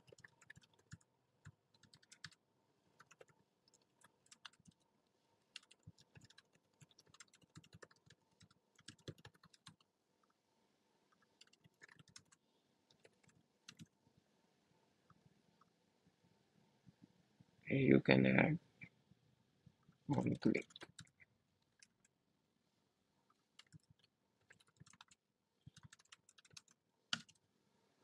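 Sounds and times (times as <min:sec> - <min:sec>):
faint keyboard typing: 0:00.0 - 0:04.9, 0:05.5 - 0:10.4, 0:11.1 - 0:14.0, 0:19.7 - 0:22.2, 0:23.3 - 0:27.4.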